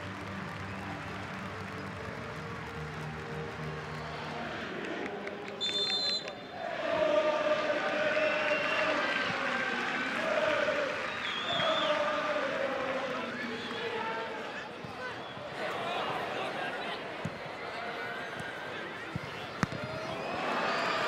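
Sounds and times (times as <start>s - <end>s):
stadium crowd noise: 0.0s - 21.0s
supporters singing: 4.1s - 17.4s
referee's whistle: 5.6s - 6.5s, 11.1s - 12.0s.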